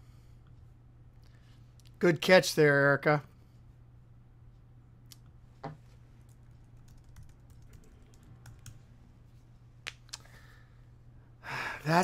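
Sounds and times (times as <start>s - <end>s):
low steady hum: 0.0s - 12.0s
keyboard typing clicks: 6.3s - 8.8s.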